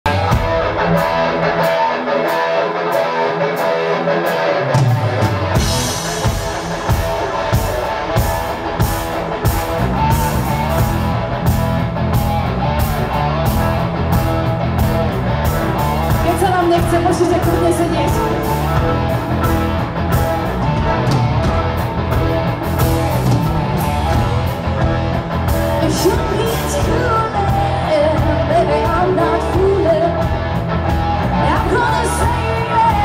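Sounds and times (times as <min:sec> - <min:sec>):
live rock band playing: 0:00.0 - 0:33.0.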